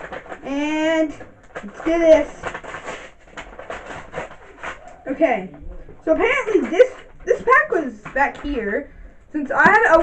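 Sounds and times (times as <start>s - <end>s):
plastic packaging crackling: 0.0s - 5.2s.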